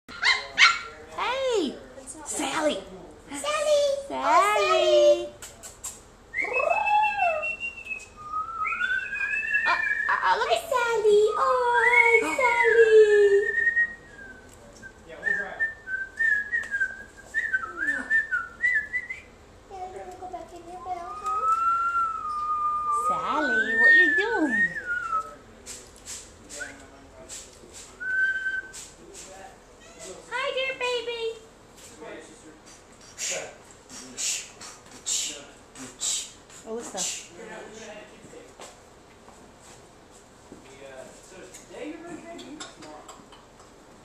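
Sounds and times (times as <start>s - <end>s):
puppies yipping: 0.1s - 1.0s
puppies whining squeaks: 20.8s - 24.7s.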